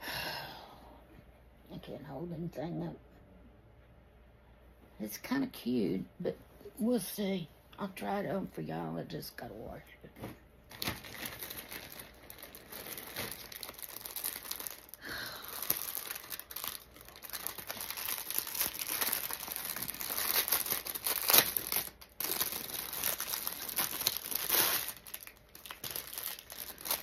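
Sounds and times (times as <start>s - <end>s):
plastic bags crinkling: 10.7s - 27.0s.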